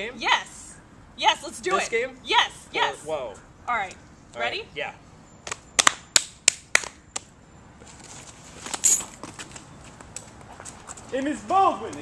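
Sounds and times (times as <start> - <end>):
sharp hand claps: 5.4 - 7.3.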